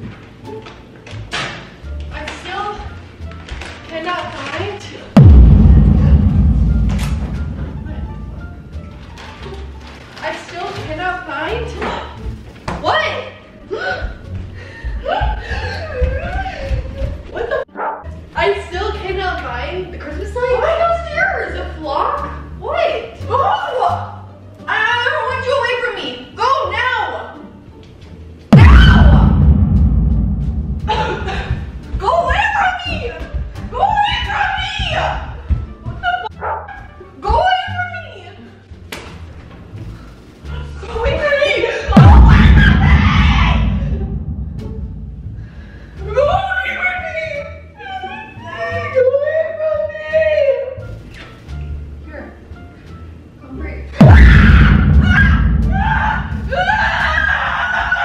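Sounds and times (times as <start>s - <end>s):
background music: 0.0s - 58.0s
thump: 5.2s - 9.1s, 28.6s - 31.7s, 42.0s - 45.6s, 54.0s - 56.7s
heavy low rumble: 5.2s - 9.4s, 28.5s - 31.9s, 42.0s - 45.9s, 54.0s - 56.8s.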